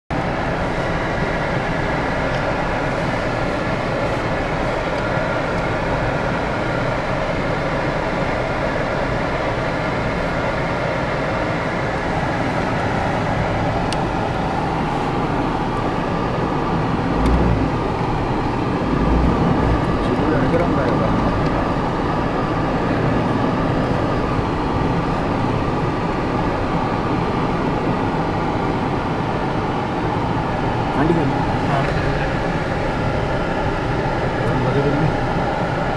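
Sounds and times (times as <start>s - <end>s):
vehicle engine and road noise: 0.1s - 35.9s
heavy low thumps: 17.0s - 18.0s, 18.9s - 20.5s.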